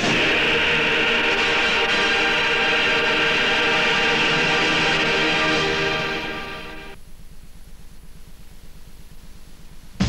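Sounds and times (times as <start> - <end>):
choir singing: 0.0 - 7.0
instrumental backing chord: 0.0 - 7.0.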